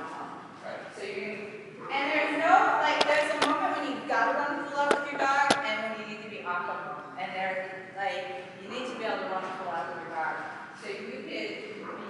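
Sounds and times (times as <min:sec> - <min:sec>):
sharp taps: 0:03.0 - 0:03.6, 0:04.9 - 0:05.6.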